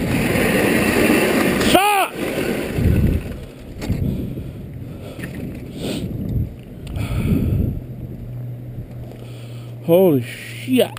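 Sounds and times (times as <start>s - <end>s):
sled runners scraping over snow: 0.0s - 7.2s
low steady hum: 0.0s - 10.9s.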